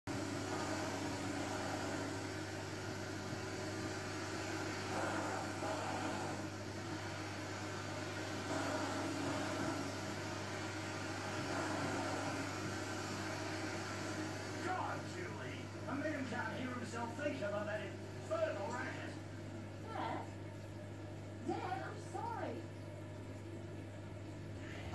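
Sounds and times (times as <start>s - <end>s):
low electrical hum: 0.1s - 24.9s
television dialogue: 13.4s - 20.7s, 21.3s - 22.7s.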